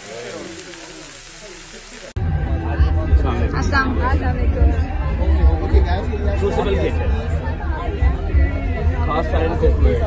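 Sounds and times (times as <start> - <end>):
patties sizzling in a pan: 0.0 - 2.2
crowd chatter: 0.0 - 10.0
bass-heavy music: 2.2 - 10.0.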